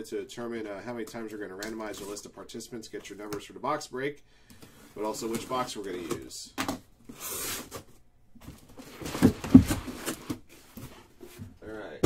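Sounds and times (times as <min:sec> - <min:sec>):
cardboard scraping rustle: 0:07.1 - 0:11.6
cardboard boxes knocking and thumping: 0:07.7 - 0:11.6.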